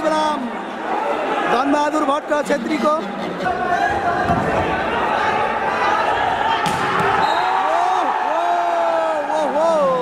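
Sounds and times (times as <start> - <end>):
crowded hall noise: 0.0 - 10.0
volleyball smacks: 6.6 - 7.2.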